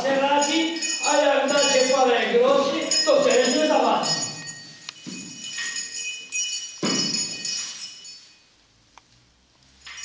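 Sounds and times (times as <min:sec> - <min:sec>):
small metal bells jingling: 0:00.0 - 0:08.7, 0:09.6 - 0:10.0
thud: 0:06.8 - 0:07.5.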